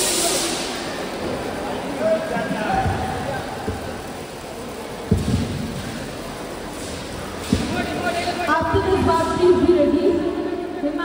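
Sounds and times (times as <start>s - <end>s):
crowd and hall background noise: 0.0s - 11.0s.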